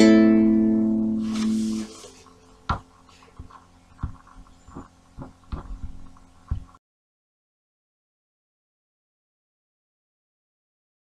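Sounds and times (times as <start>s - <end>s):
dull low thumps and knocks: 2.7s - 6.8s.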